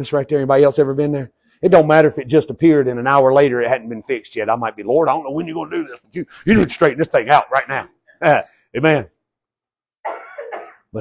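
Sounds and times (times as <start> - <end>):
man coughing: 10.0 - 11.0.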